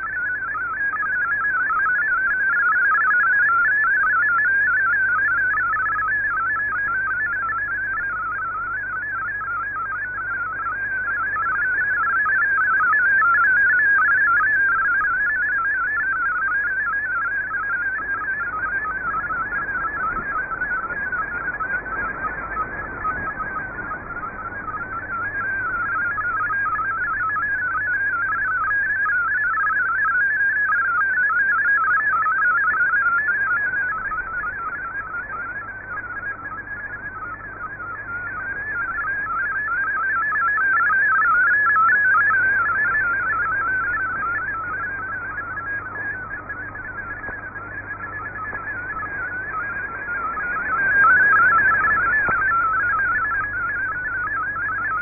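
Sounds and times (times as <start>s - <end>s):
receiver hiss: 0.0s - 55.0s
warbling digital radio tones: 0.0s - 55.0s.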